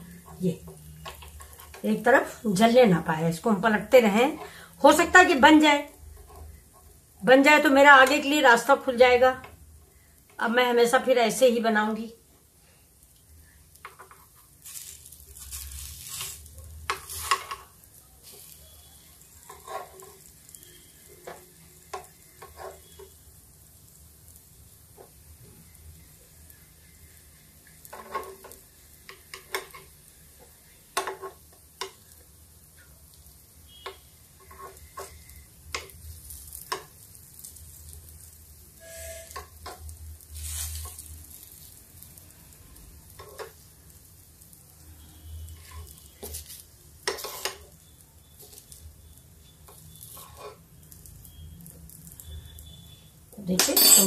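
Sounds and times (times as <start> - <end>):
faint sizzle: 0.0 - 54.0
metal spoon scraping a pan: 6.0 - 7.0, 13.8 - 23.2, 27.8 - 30.0, 31.0 - 32.1, 33.7 - 37.9, 38.8 - 41.7, 43.1 - 43.6, 45.5 - 47.8, 49.6 - 50.8, 53.5 - 54.0.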